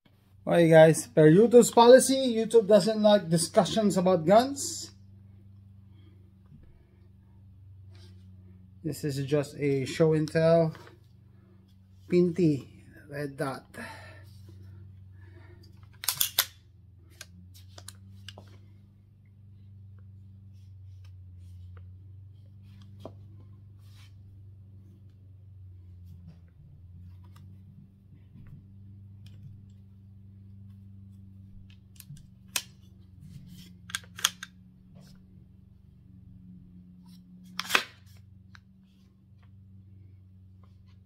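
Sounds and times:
low steady hum: 0:00.1 - 0:41.0
light rifle part clicks: 0:15.9 - 0:16.6, 0:33.9 - 0:34.6
sharp metallic rifle clicks: 0:16.0 - 0:16.6.

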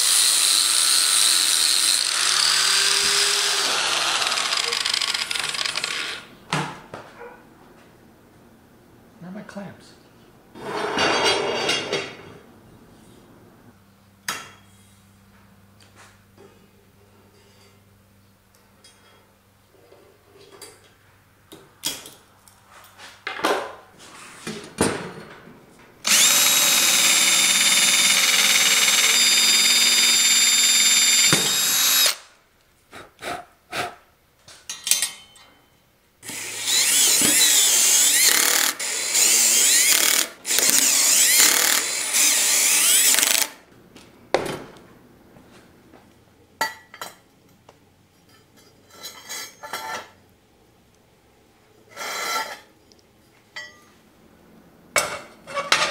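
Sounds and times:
cordless drill drilling into steel: 0:00.0 - 0:06.3, 0:26.0 - 0:32.2, 0:36.2 - 0:43.6.

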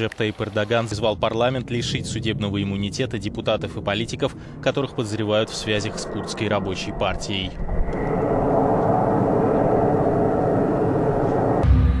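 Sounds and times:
fighter jet engines running: 0:00.0 - 0:12.0.

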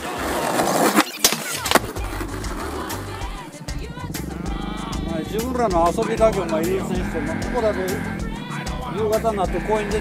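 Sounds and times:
skateboard clacking on ground: 0:00.0 - 0:03.4
skateboard wheels rolling on concrete: 0:00.0 - 0:05.5.

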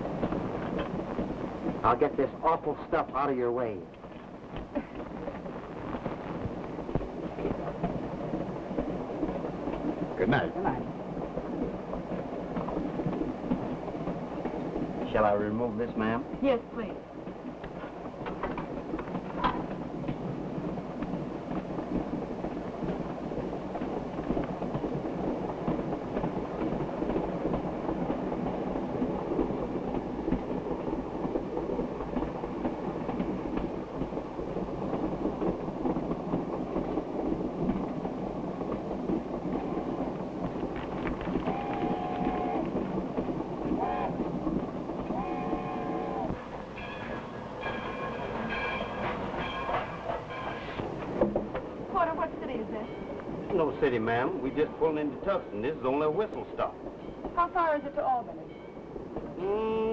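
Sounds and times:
wheels clattering over rail joints: 0:00.0 - 0:59.4
train rumbling on rails: 0:00.0 - 0:59.9
locomotive whistle blasts: 0:41.5 - 0:42.6, 0:43.8 - 0:44.2.

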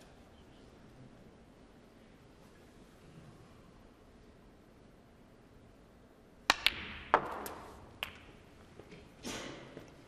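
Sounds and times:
snooker balls clicking: 0:06.4 - 0:09.1
cue tip striking ball: 0:06.5 - 0:08.4.

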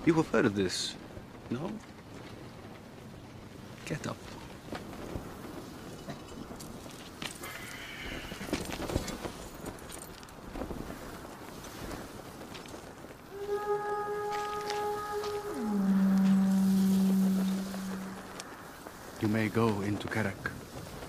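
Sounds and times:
sustained music note: 0:13.3 - 0:18.6.

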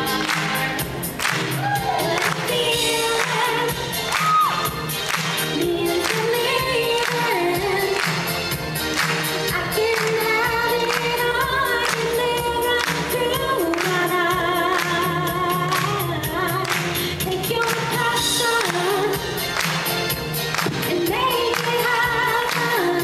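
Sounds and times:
pop backing music with drum beat: 0:00.0 - 0:23.0
woman singing: 0:01.7 - 0:04.7, 0:05.5 - 0:08.2, 0:09.5 - 0:19.4, 0:20.6 - 0:23.0.

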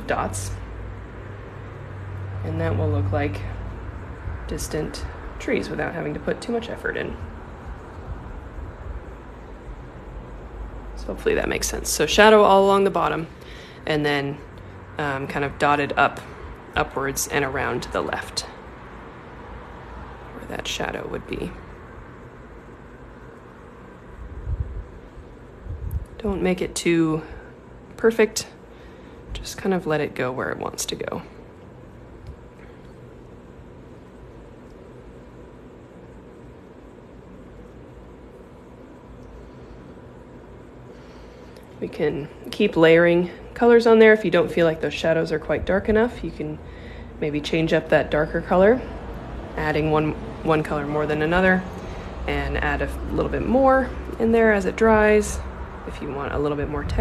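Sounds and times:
low room rumble: 0:00.0 - 0:57.0.

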